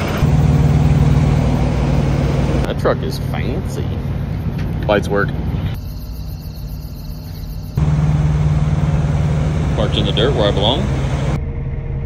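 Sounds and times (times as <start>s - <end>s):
truck diesel engine idling: 0.0s - 4.6s, 7.2s - 11.4s.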